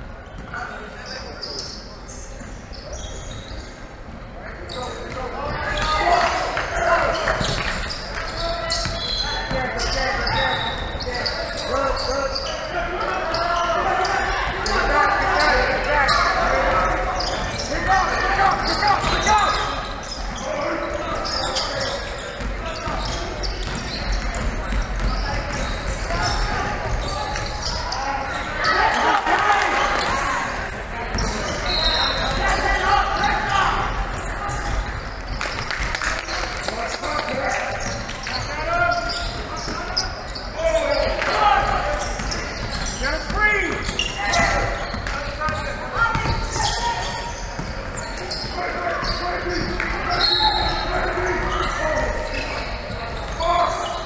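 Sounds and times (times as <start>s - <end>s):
voices calling out: 4.7s - 54.0s
basketball bouncing on hardwood: 23.6s - 25.7s, 46.1s - 46.6s.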